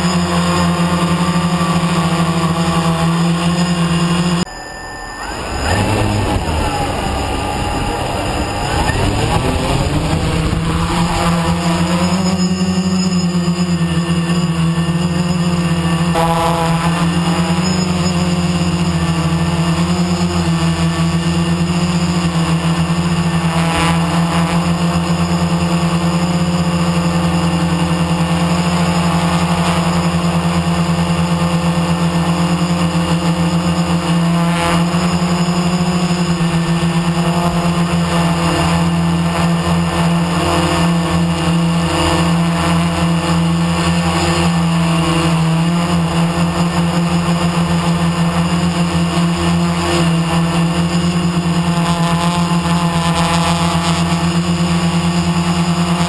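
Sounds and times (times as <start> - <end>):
drone motors humming: 0.0 - 56.0.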